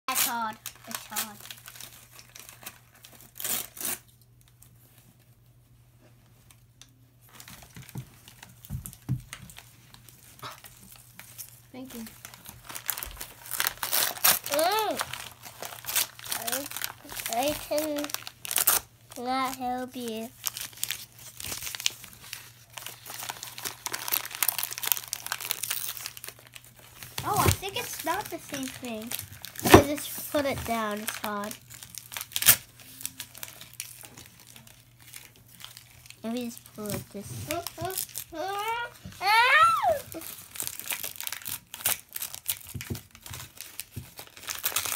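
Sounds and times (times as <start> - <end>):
plastic packet rustling: 0.1 - 4.8, 7.2 - 44.9
wrapping paper crinkling: 0.1 - 5.4, 6.0 - 44.9.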